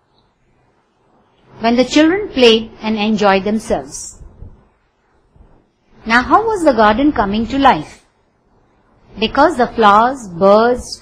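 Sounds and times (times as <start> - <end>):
faint background hiss: 0.0 - 11.0
person speaking: 1.5 - 4.4, 6.0 - 8.1, 9.2 - 11.0.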